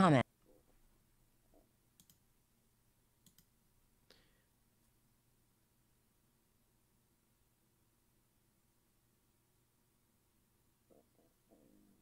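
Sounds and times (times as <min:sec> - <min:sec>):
computer mouse clicks: 0:01.9 - 0:02.2, 0:03.2 - 0:03.5.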